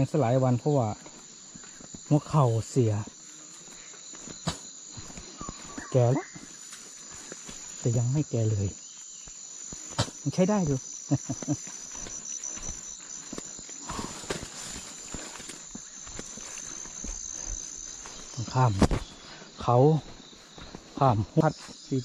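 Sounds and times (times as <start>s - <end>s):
high-pitched insect chorus: 0.0s - 22.0s.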